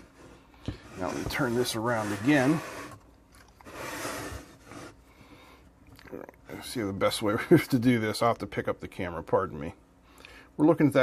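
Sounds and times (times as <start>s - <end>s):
metal case scraping across bench: 0.0s - 3.0s, 3.6s - 5.0s.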